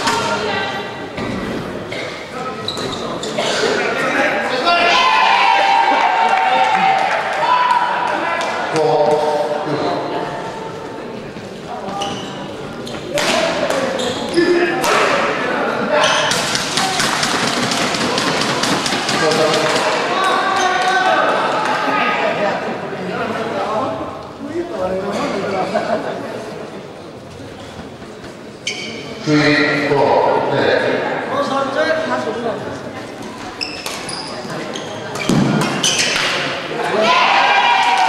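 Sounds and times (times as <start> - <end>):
voices in a hall: 0.0 - 38.0
shoes squeaking on court: 2.6 - 3.4, 11.3 - 13.2, 13.9 - 14.6, 28.6 - 29.2, 33.4 - 36.4.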